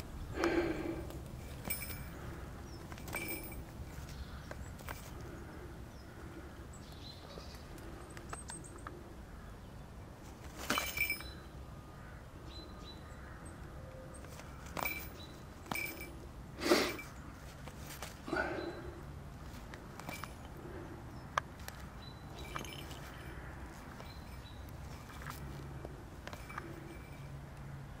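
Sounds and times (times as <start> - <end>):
rustles and crackles in undergrowth: 0.0 - 28.0
light clinks: 0.4 - 5.6, 10.5 - 11.6, 14.1 - 17.2, 18.0 - 27.7.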